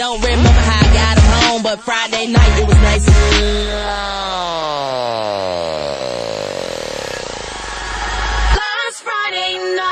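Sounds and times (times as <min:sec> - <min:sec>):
deep bass note: 0:03.0 - 0:08.6
synthesizer note sliding down: 0:03.3 - 0:08.6.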